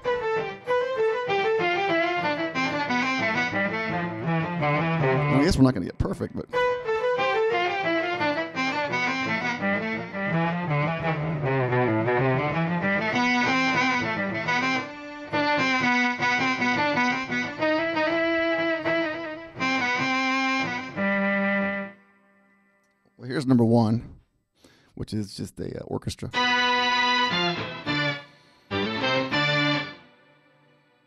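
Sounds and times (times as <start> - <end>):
electric guitar sustained tones: 6.6 - 21.9.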